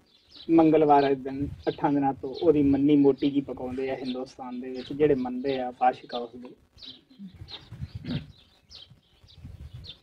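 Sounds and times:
faint birds chirping: 0:00.0 - 0:10.0
soft indistinct low sounds: 0:00.4 - 0:09.8.

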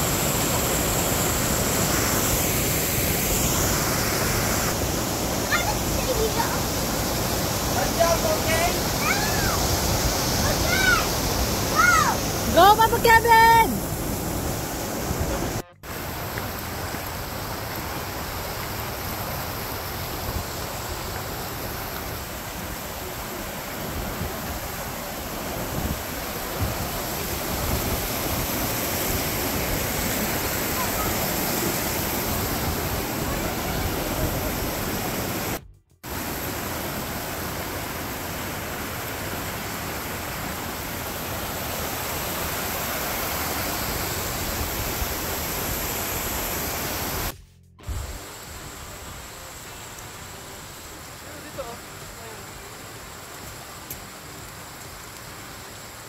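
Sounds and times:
river rushing over boulders: 0:00.0 - 0:56.0.

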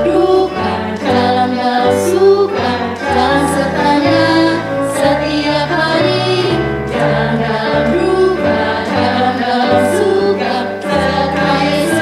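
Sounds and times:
instrumental backing track: 0:00.0 - 0:12.0
women singing in unison: 0:00.0 - 0:12.0.

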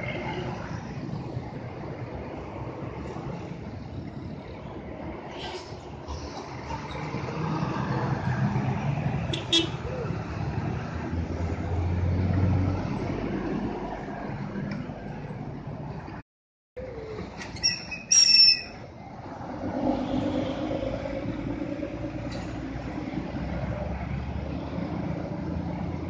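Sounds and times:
truck engine passing: 0:00.0 - 0:16.0
bus diesel engine passing: 0:00.0 - 0:16.2, 0:16.8 - 0:26.0.

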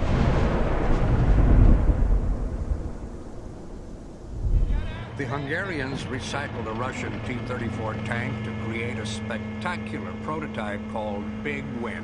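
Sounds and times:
deep rumbling boom: 0:00.0 - 0:07.9.

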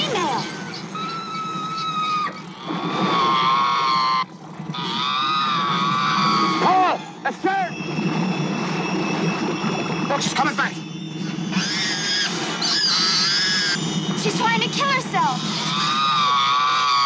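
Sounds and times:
killer whale squeals: 0:00.0 - 0:17.0
killer whale whistle-like cries: 0:00.0 - 0:17.0.

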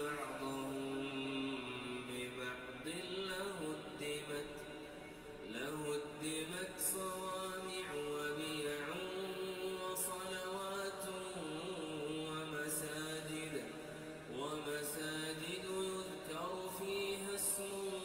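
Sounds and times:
man chanting melodically: 0:00.0 - 0:18.0.

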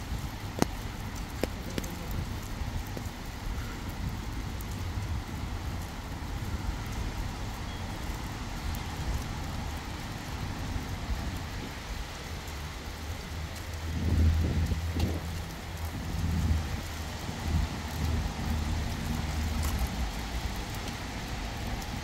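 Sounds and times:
rain on wet paving: 0:00.0 - 0:22.0
wind rumble on microphone: 0:00.0 - 0:22.0.

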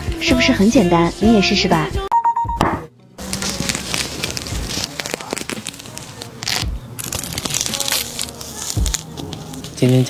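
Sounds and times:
orange peel tearing: 0:03.2 - 0:10.0.

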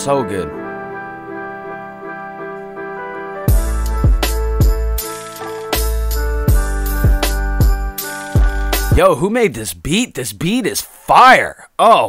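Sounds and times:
piano playing slow chords: 0:00.0 - 0:09.0.

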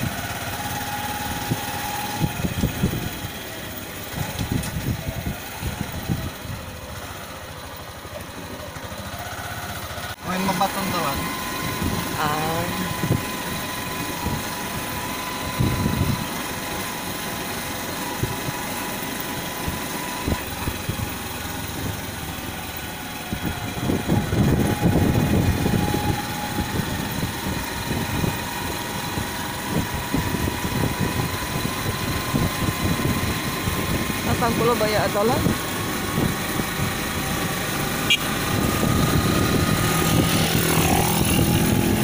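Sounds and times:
small motorcycle engine running: 0:00.0 - 0:42.0.

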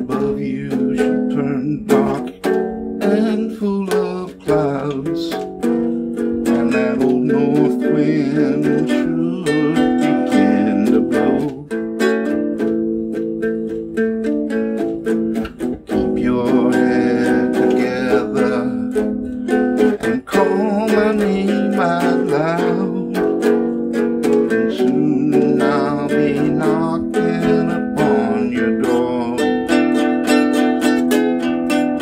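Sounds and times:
man singing: 0:00.0 - 0:13.5, 0:14.2 - 0:31.0
small guitar strummed: 0:00.0 - 0:32.0.

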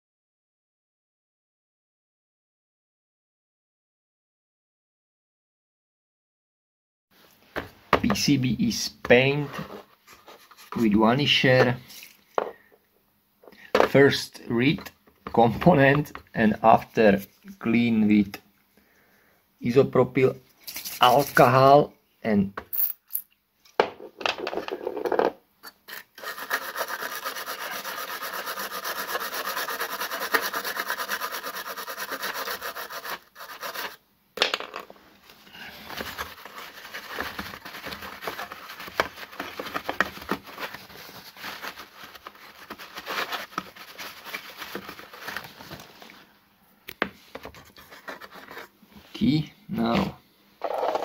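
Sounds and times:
rubbing and scratching: 0:09.1 - 0:11.0, 0:20.5 - 0:21.7, 0:25.6 - 0:34.0, 0:35.2 - 0:46.2, 0:47.3 - 0:48.8.

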